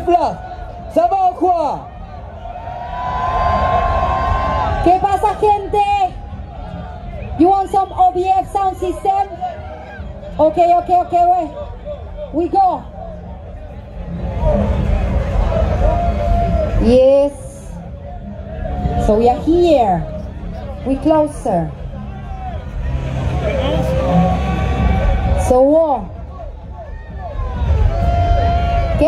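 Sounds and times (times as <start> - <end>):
crowd chatter: 0.0 - 29.0
dub music with heavy bass: 0.0 - 29.0.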